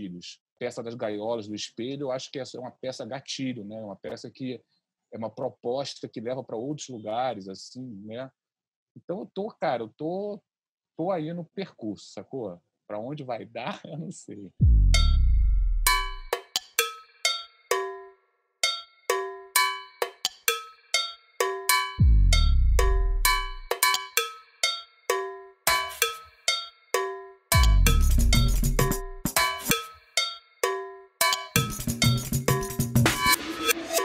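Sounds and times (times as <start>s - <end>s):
deep falling bass note: 14.6s - 16.2s, 22.0s - 23.6s
bell-like metallic percussion: 15.0s - 34.0s.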